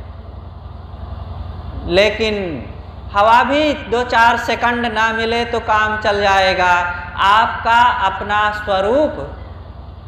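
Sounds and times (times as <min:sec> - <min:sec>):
low background hum: 0:00.0 - 0:10.0
man speaking: 0:01.8 - 0:09.3.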